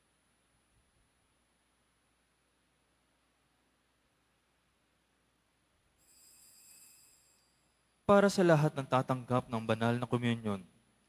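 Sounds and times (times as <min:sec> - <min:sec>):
faint high-pitched hiss and whine: 0:00.0 - 0:11.0.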